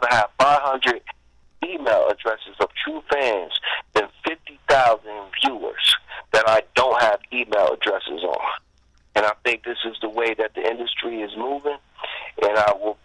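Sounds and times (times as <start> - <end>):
man talking over telephone: 0.0 - 13.0.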